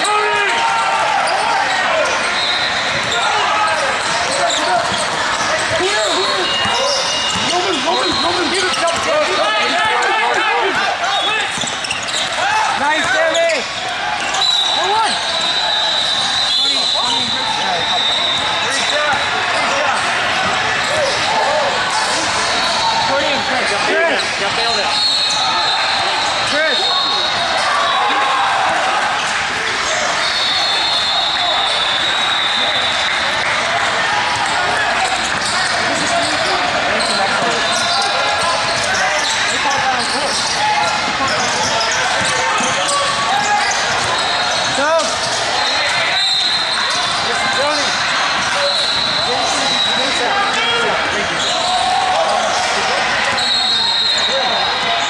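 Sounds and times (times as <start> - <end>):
hubbub of voices: 0.0 - 55.0
basketball bouncing on indoor court: 1.1 - 10.4, 11.4 - 16.2, 28.5 - 49.9.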